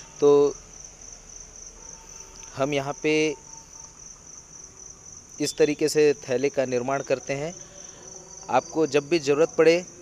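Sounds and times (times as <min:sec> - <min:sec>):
insect chirring: 0:00.0 - 0:10.0
man speaking: 0:00.1 - 0:00.6, 0:02.5 - 0:03.6, 0:05.4 - 0:10.0.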